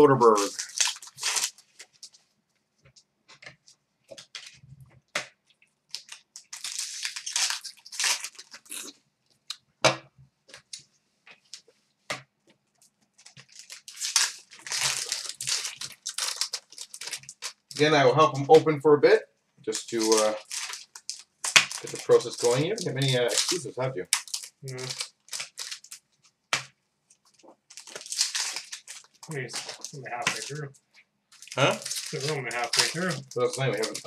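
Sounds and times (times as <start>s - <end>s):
card pack wrappers tearing: 0.0s - 2.0s, 5.9s - 8.9s, 13.4s - 18.0s, 19.7s - 26.0s, 27.7s - 30.6s, 31.4s - 34.0s.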